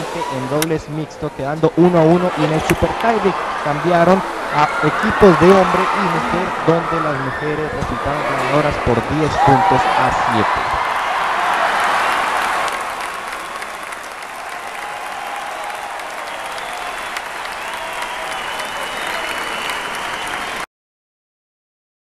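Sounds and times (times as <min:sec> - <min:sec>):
voices: 0:00.0 - 0:10.8
crowd applauding: 0:01.8 - 0:20.7.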